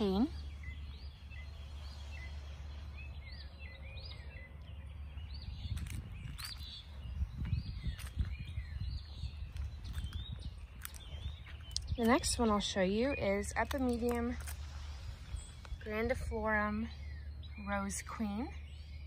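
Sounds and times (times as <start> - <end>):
songbirds chirping: 0.0 - 19.0
footsteps on paved path: 4.7 - 16.3.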